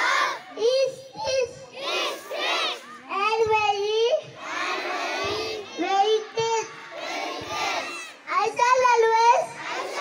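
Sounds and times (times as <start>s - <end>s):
children chanting in unison: 0.0s - 10.0s.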